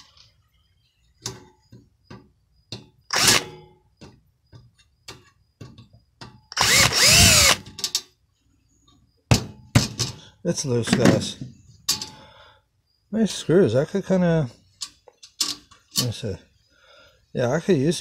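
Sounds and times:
power drill running: 3.1 - 3.4, 6.5 - 7.6.

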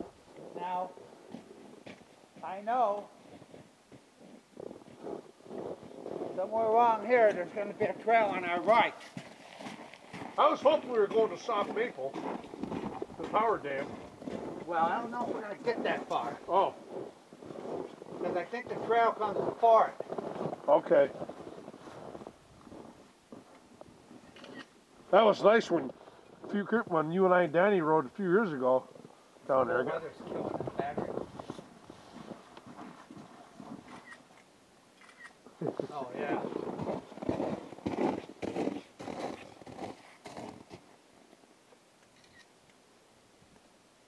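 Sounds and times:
low background noise: 0.0 - 44.0
men laughing and talking: 14.6 - 16.8, 35.5 - 36.5.

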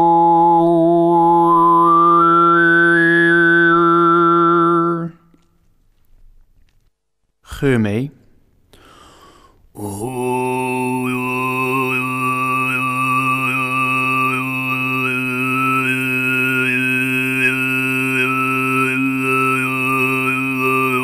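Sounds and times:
overtone singing drone: 0.0 - 5.2, 9.8 - 21.0.

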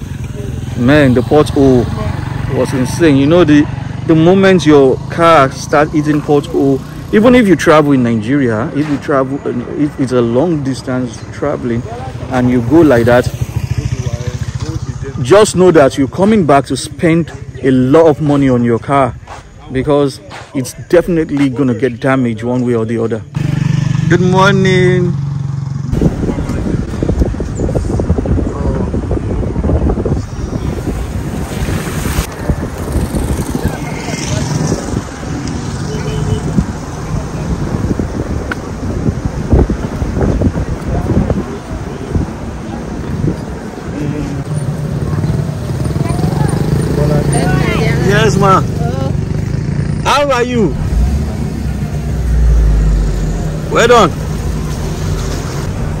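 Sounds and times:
wind buffeting microphone: 25.9 - 49.6
deep low rumble: 50.7 - 55.2.

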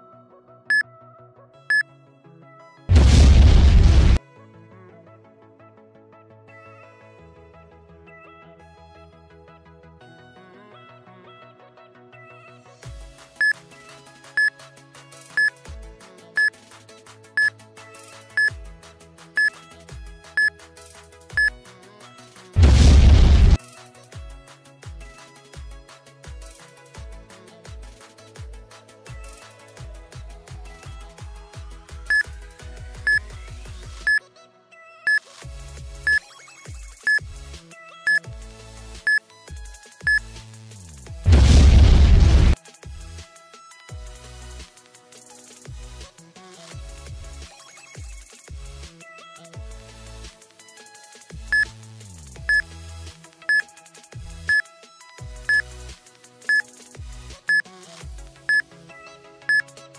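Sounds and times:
background music with low bass: 0.0 - 59.9
loud burst of noise: 2.9 - 4.2, 22.6 - 23.6, 41.3 - 42.6
electronic music with a beat: 21.4 - 21.6, 31.8 - 34.2, 35.1 - 43.2, 46.5 - 48.8, 59.5 - 59.9
short high electronic beeps: 36.1 - 37.2.

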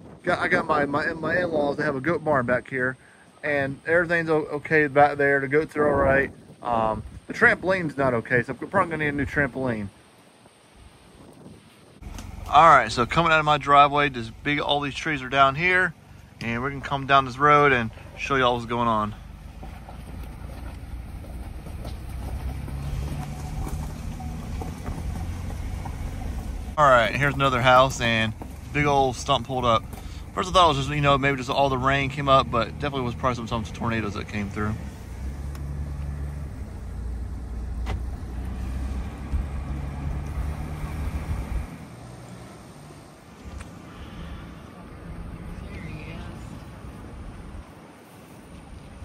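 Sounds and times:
faint engine hum: 12.0 - 49.0
vehicle rumble on wet road: 12.0 - 49.0.

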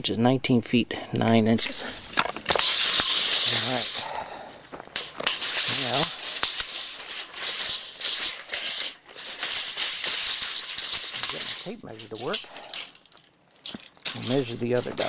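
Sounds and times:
footsteps on gravel: 1.9 - 7.7.

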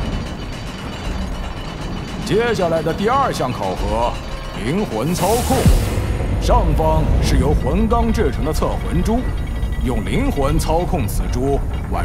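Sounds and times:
low rumble with hiss: 4.8 - 12.0.

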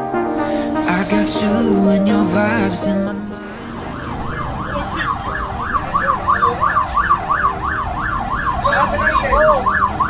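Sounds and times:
fast yelp siren: 3.8 - 10.0.

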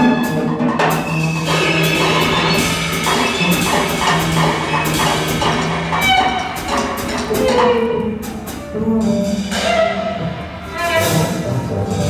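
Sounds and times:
bowed violin: 0.0 - 12.0
drum kit cymbal strokes: 0.0 - 12.0.

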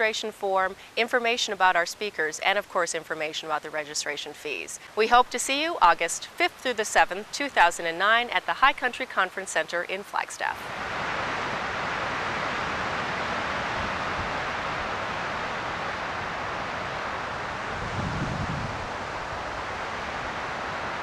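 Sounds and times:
breeze rustling foliage: 0.0 - 21.0
wind rumble on microphone: 10.7 - 21.0.

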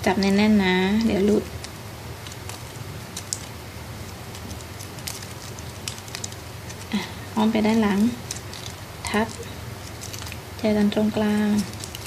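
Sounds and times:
plastic ribbon crinkling: 0.0 - 12.0.

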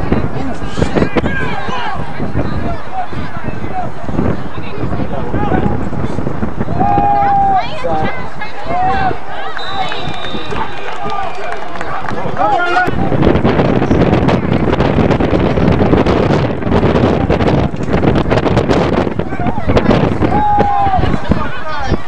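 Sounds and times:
wind buffeting microphone: 0.0 - 22.0
spectators shouting: 6.6 - 13.4, 19.2 - 22.0.

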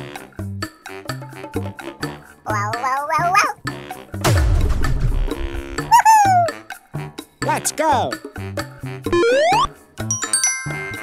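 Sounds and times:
children's background music: 0.0 - 11.0
cartoon animal squeak: 2.5 - 3.6, 5.9 - 6.6
cartoon poof sound effect: 9.2 - 9.7.

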